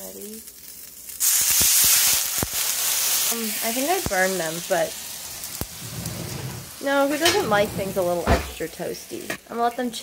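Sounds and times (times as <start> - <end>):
dumplings sizzling in a frying pan: 0.0 - 10.0.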